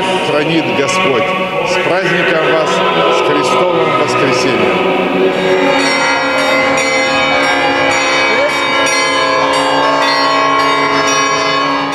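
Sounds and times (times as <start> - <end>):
church bells pealing: 0.0 - 11.9.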